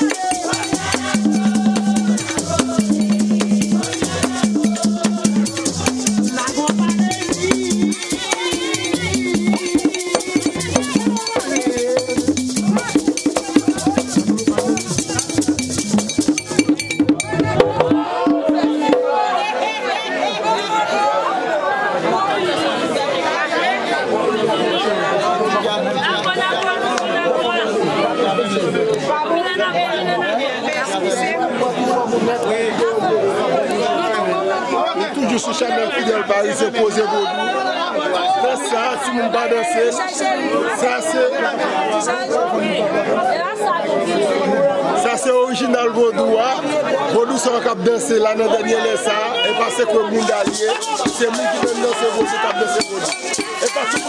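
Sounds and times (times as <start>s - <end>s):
drums playing fast rhythm: 0.0s - 19.6s, 49.4s - 54.0s
crowd of overlapping voices: 0.0s - 54.0s.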